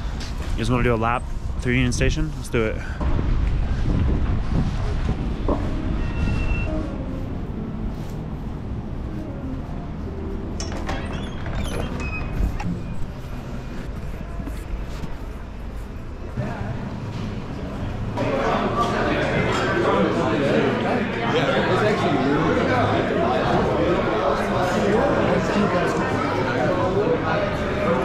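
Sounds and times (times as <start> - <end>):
murmur of many voices: 0.0 - 28.0
wind rumble on microphone: 3.0 - 6.9.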